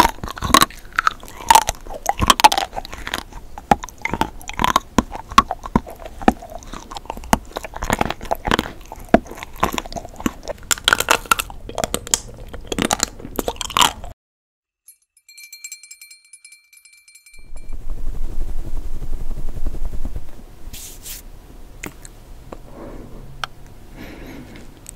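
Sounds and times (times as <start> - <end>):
crunchy chewing of hard sweets: 0.0 - 14.2
twinkling high chime: 14.9 - 17.8
hands rubbing together: 20.7 - 21.2.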